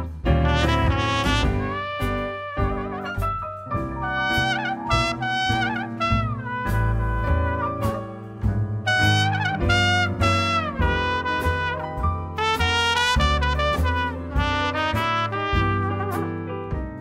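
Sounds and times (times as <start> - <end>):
trumpet with falling smears: 0.0 - 16.8
bass: 0.0 - 17.0
drums with cymbals: 0.0 - 17.0
piano: 0.0 - 17.0.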